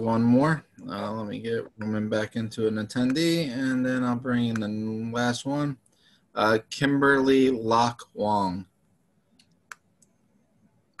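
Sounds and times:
computer mouse clicks: 9.3s - 10.2s.

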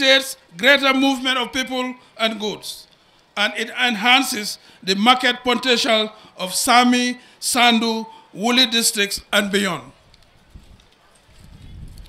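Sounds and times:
faint outdoor crowd: 0.0s - 12.0s.

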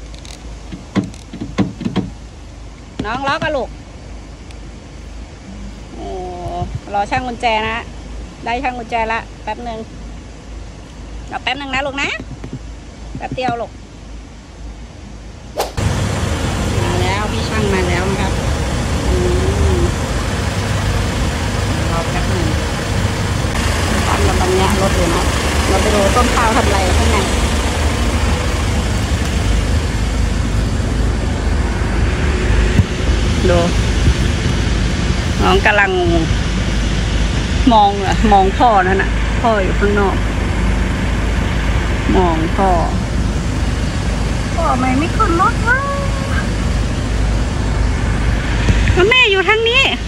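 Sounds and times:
person speaking: 5.5s - 7.8s, 19.0s - 20.0s, 21.7s - 22.8s, 23.6s - 27.6s
vehicle engine idling: 15.8s - 50.0s.

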